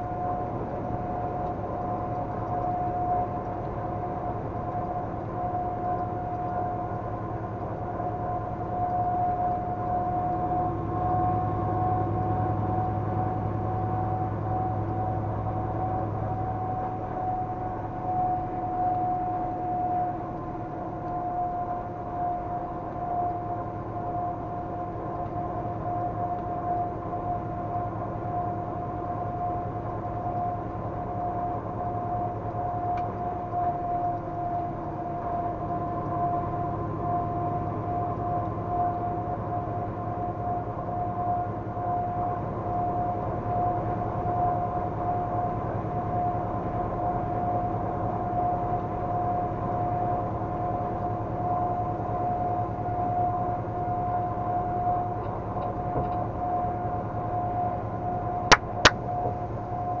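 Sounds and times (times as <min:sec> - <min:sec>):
road and engine drone: 0:54.4 - 1:00.0.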